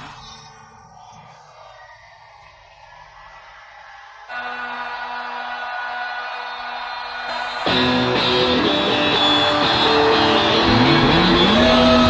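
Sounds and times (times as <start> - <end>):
instrumental rock with electric guitar: 7.3 - 12.0.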